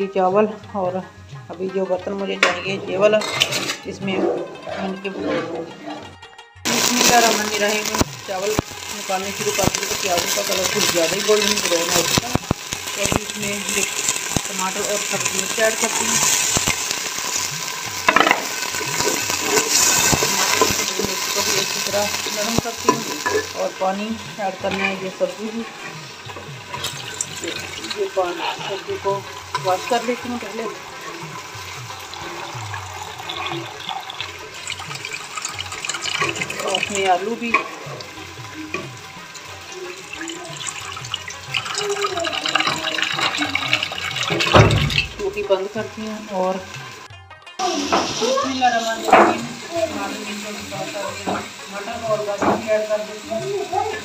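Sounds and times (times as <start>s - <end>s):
background music with voice: 0.0s - 54.0s
onions sizzling in hot oil: 1.6s - 4.7s, 6.6s - 54.0s
tap water splashing into sink: 42.4s - 45.1s.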